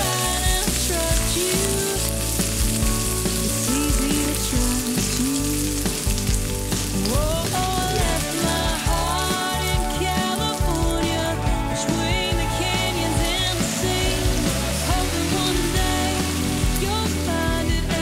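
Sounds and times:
shallots sizzling in hot oil: 0.0 - 18.0
song with gliding melody: 0.0 - 18.0.

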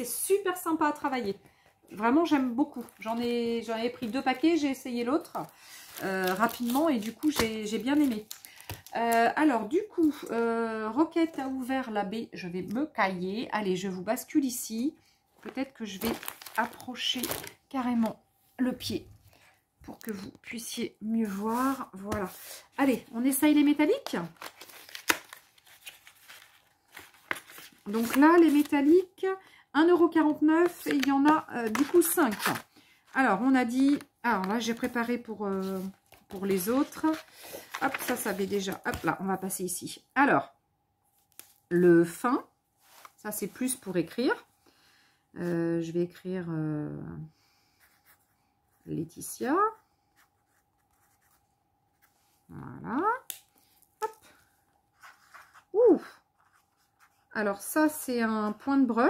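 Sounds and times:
person speaking: 8.9 - 19.1, 19.8 - 24.4, 27.8 - 39.8.

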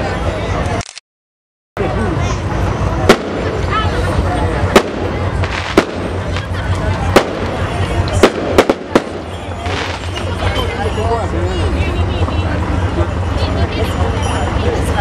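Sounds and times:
crowd chatter: 0.0 - 1.0, 1.8 - 15.0
firecrackers banging: 2.4 - 10.7.

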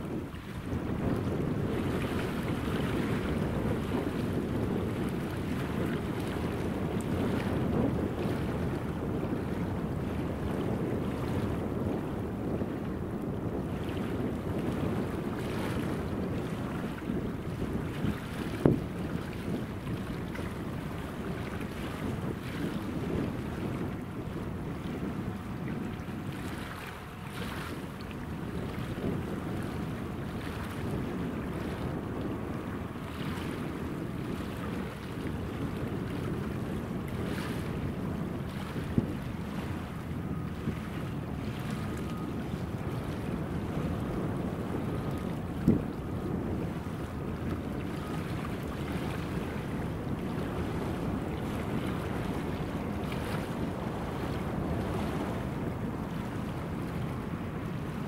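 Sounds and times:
wind rumbling on microphone: 0.0 - 58.0.

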